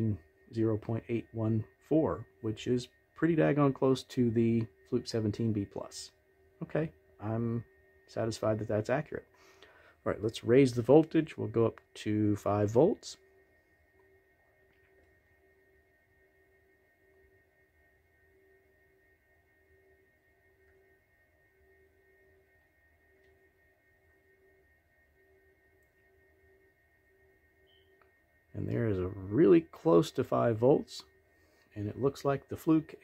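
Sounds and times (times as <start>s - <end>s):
faint low hum: 0.0s - 33.0s
thin high whine: 0.0s - 33.0s.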